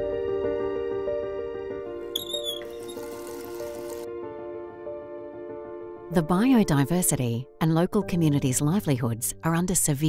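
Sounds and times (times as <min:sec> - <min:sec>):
soft slow background music: 0:00.0 - 0:10.0
small animal squeaky chirping: 0:02.2 - 0:03.2.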